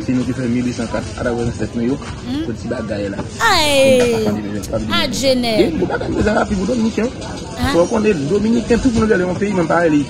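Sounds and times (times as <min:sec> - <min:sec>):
person talking: 0:02.3 - 0:02.6, 0:03.4 - 0:05.8, 0:07.6 - 0:07.9.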